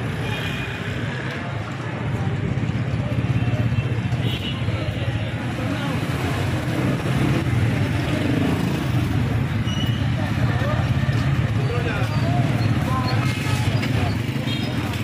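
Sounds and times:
cars and motorcycles passing: 0.0 - 15.0
people talking on street: 0.0 - 15.0.

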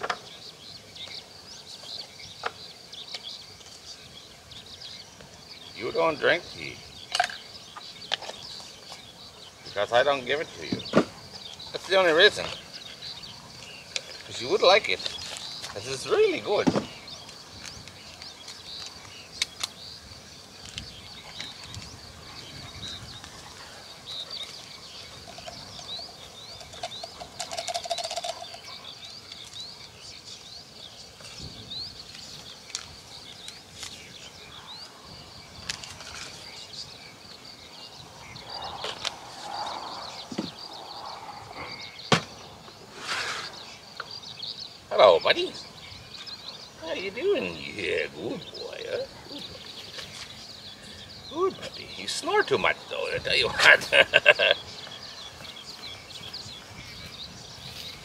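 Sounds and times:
small birds chirping: 0.0 - 58.0.

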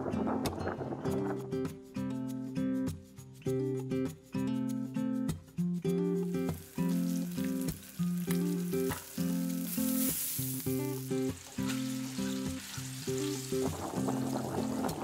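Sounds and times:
light background music: 1.2 - 15.0
food sizzling in a pan: 6.2 - 15.0.

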